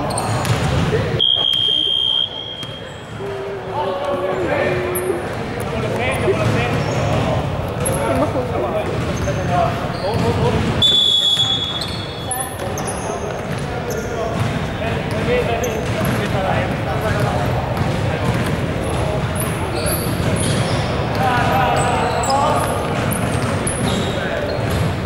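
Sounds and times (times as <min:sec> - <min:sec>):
sneakers squeaking: 0:00.0 - 0:03.6, 0:04.3 - 0:25.0
echoing voices: 0:00.0 - 0:10.8, 0:11.4 - 0:25.0
basketball bouncing on hardwood: 0:00.4 - 0:00.9, 0:14.4 - 0:16.2.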